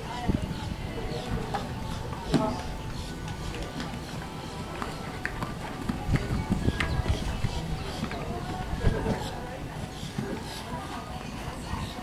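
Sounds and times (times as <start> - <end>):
faint loudspeaker voice: 0.0 - 12.0.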